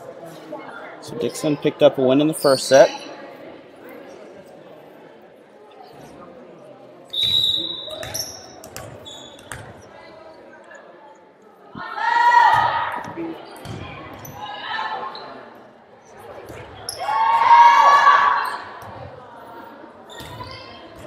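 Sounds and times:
people shouting: 17.0 - 18.5.

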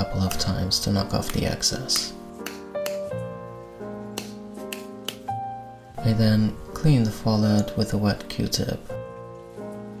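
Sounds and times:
soft background music: 0.0 - 10.0
sharp taps: 1.2 - 3.2, 4.1 - 5.3.

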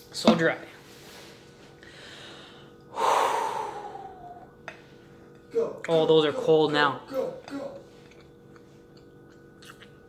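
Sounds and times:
man breathing: 1.0 - 5.2.

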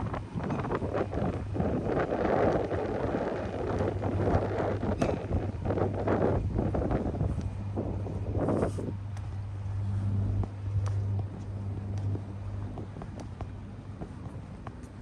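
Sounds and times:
low engine hum: 0.0 - 15.0
wind gusting on microphone: 0.0 - 15.0.

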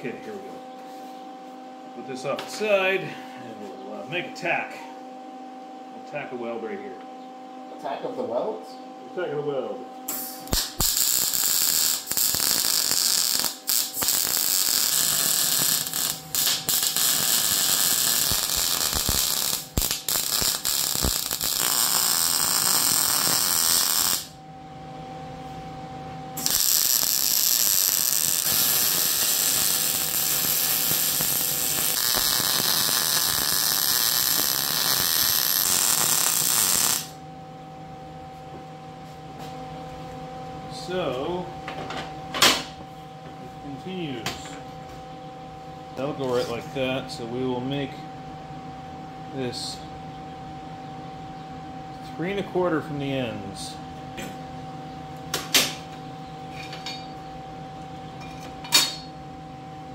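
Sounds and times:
welding arc crackling: 10.1 - 24.4, 26.4 - 37.2.

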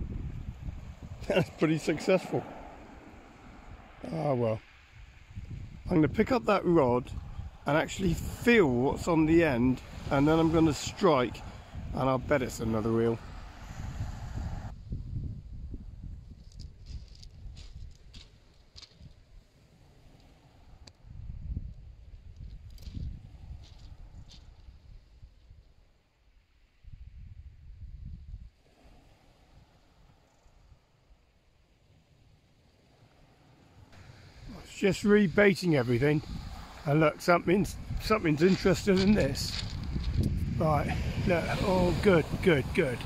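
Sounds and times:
wind rumbling on microphone: 0.0 - 43.0.

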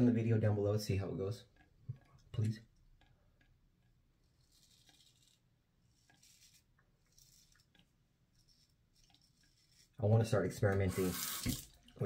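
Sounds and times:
razor scraping stubble: 4.2 - 11.7.

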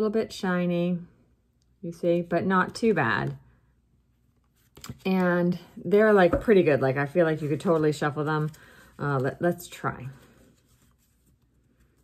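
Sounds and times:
cards rustling in hands: 4.2 - 5.3, 6.3 - 12.0.

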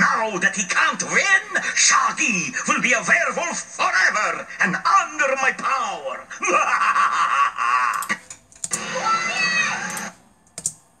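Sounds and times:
cartoon evil laugh from tv: 6.3 - 8.2
sharp clicks: 7.9 - 8.8, 9.9 - 10.8.

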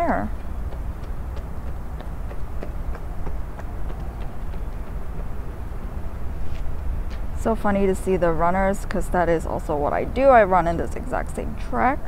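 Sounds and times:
steady low rumble: 0.0 - 12.0
runners' footsteps: 0.3 - 7.4.

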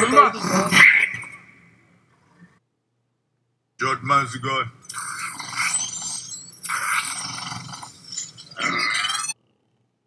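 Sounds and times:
dragon screeching and hissing: 4.9 - 9.4.

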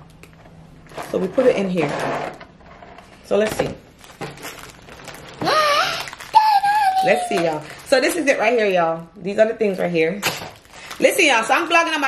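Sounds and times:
packaging rustling: 3.8 - 8.8, 9.6 - 11.6.

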